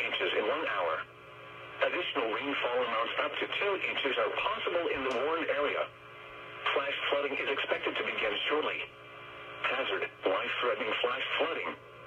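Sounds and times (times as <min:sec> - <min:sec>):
broadcast voice through radio speaker: 0:00.0 - 0:06.0, 0:06.6 - 0:11.9.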